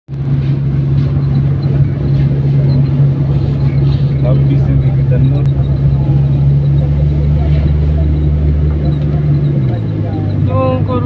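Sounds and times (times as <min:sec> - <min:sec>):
motorcycle engine running: 0:00.1 - 0:11.0.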